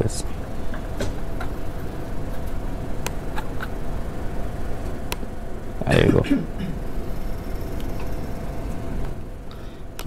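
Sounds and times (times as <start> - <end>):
low room rumble: 0.0 - 10.0.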